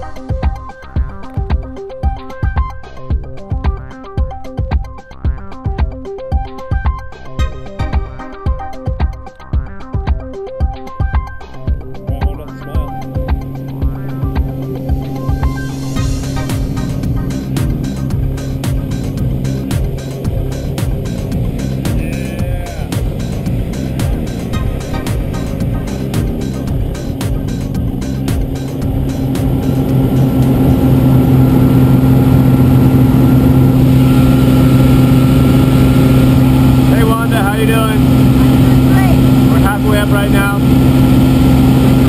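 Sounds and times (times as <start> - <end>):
background music with steady beat: 0.0 - 42.0
propeller engine drone: 0.0 - 42.0.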